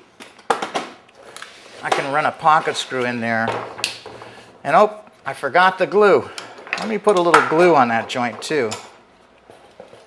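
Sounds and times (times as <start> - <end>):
man speaking: 1.8 - 3.6, 4.6 - 8.9.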